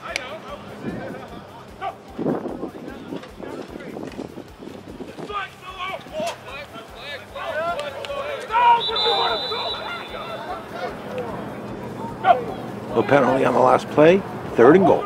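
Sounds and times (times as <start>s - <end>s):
people shouting: 1.7s - 2.2s, 5.2s - 13.0s
referee's whistle blast: 8.5s - 10.6s.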